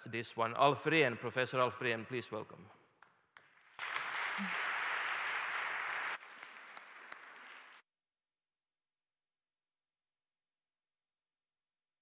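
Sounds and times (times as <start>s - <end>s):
audience applauding: 3.4s - 7.8s.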